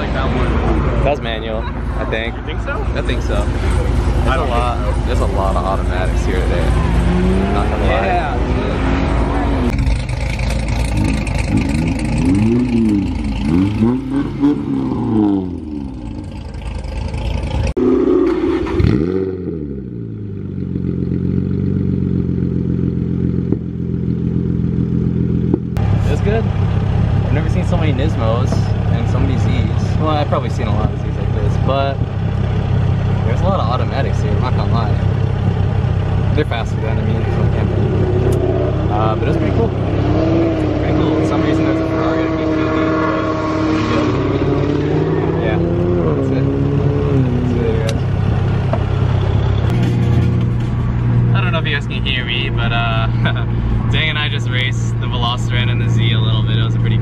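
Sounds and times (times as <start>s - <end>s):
car engine idling: 0.0s - 19.1s, 19.8s - 57.0s
car engine revving: 0.0s - 57.0s.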